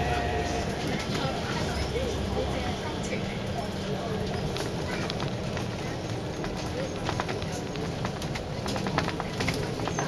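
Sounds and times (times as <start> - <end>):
bus engine rumble: 0.0 - 10.0
bodywork clicks and rattles: 4.4 - 10.0.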